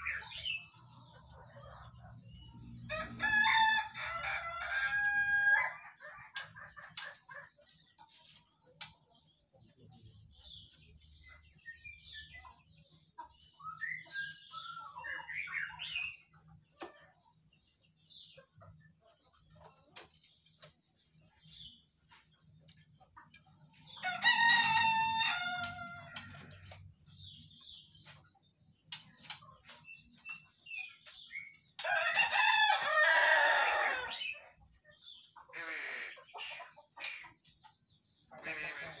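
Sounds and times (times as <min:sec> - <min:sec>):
rooster crowing: 0:02.9 - 0:05.8, 0:24.0 - 0:26.4, 0:31.8 - 0:34.3.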